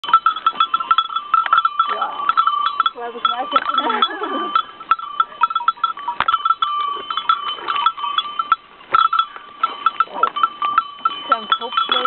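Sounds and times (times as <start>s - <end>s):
goat bells clanking: 0.0s - 12.0s.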